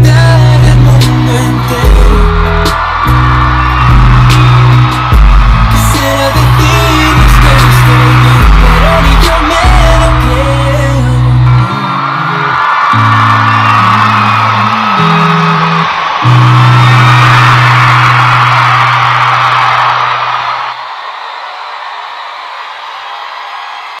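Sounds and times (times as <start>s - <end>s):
live pop song: 0.0s - 18.4s
audience whooping and cheering: 0.0s - 24.0s.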